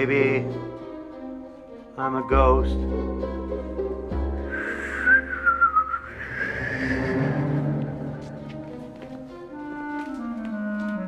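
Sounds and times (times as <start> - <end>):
low orchestral score: 0.0 - 11.0
high wavering whistle: 4.5 - 7.8.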